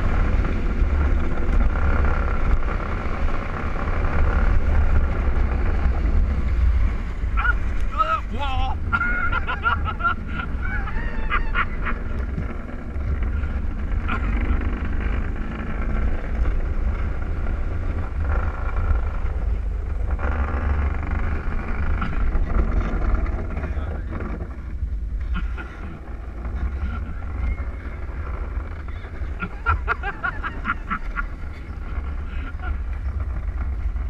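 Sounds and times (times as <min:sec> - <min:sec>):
wheels rumbling on concrete: 0:00.0 - 0:34.0
wind buffeting microphone: 0:00.0 - 0:34.0.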